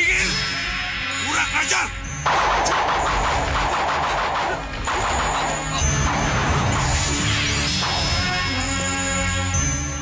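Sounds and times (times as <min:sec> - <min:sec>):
music: 0:00.0 - 0:10.0
crashing impacts and blasts: 0:02.3 - 0:08.9.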